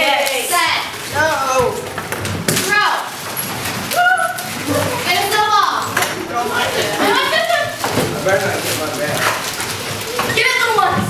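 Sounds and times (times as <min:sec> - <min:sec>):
students commotion: 0:00.0 - 0:11.0.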